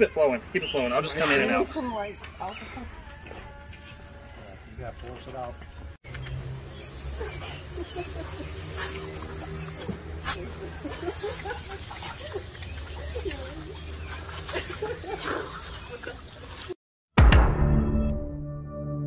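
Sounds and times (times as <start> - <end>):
hose nozzle spraying water: 5.1 - 16.8.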